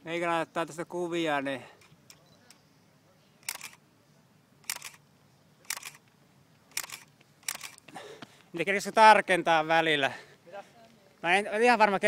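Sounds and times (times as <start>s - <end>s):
camera shutter double clicks: 3.4s - 3.8s, 4.6s - 5.0s, 5.6s - 6.0s, 6.7s - 7.8s.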